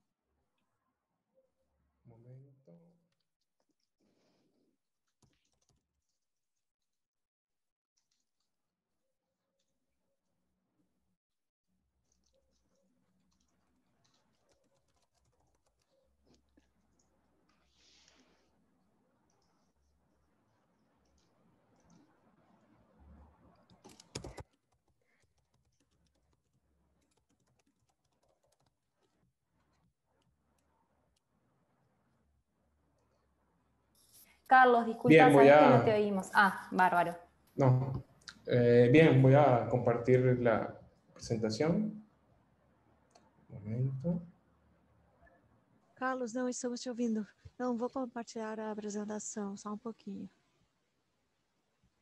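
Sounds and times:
typing on computer keyboard: 5.2s - 6.2s, 12.0s - 17.2s, 23.5s - 31.2s.

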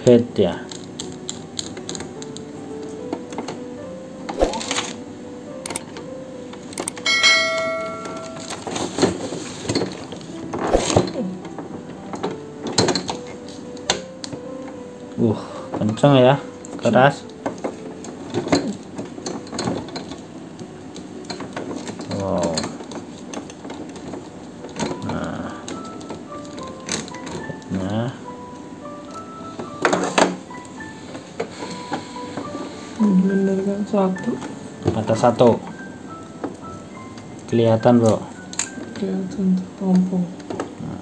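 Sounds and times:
bell-like ding: 7.0s - 8.7s.

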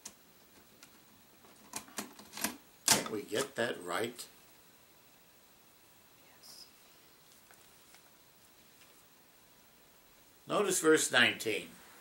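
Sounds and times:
elderly man speaking: 2.9s - 4.4s, 10.4s - 11.8s.

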